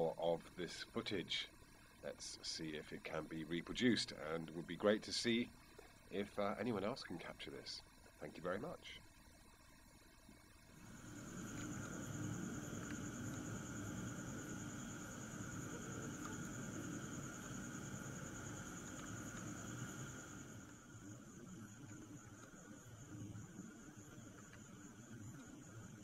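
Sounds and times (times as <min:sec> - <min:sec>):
night insects trilling: 0:00.0 - 0:26.0.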